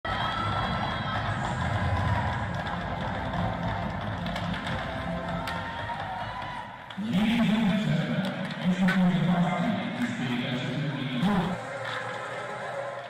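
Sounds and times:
crowd noise: 0.0 - 13.0.

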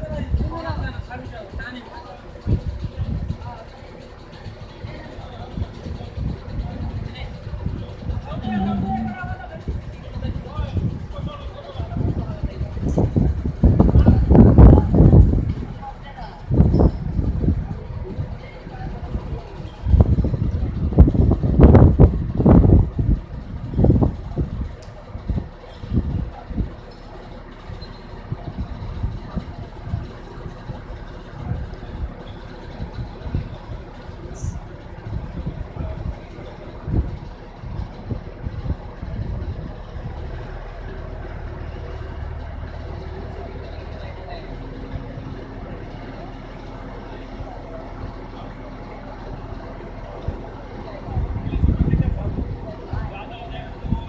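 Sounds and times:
crane engine running: 0.0 - 54.0.

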